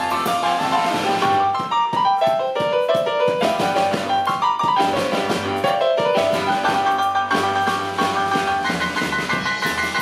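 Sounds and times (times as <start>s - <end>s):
drums with steady beat: 0.0s - 10.0s
live band playing dance music: 0.0s - 10.0s.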